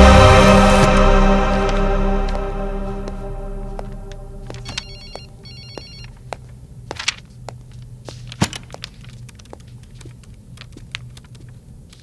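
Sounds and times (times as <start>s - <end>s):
footsteps: 0.0s - 10.1s
electronic telephone ringing: 4.6s - 6.2s.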